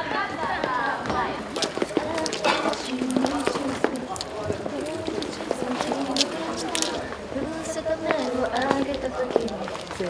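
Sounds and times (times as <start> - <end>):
women singing unaccompanied: 0.0 - 10.0.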